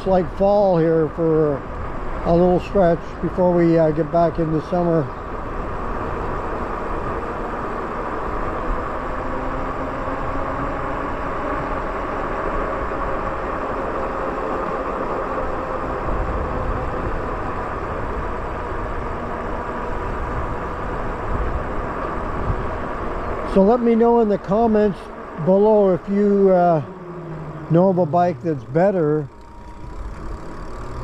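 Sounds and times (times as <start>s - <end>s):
wind and tyre noise: 0.0s - 31.0s
electric motor whine: 0.6s - 31.0s.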